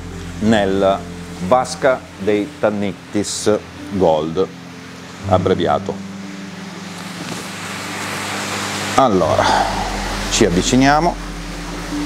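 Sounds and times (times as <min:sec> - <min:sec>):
aquarium pumps humming and hissing: 0:00.0 - 0:12.0.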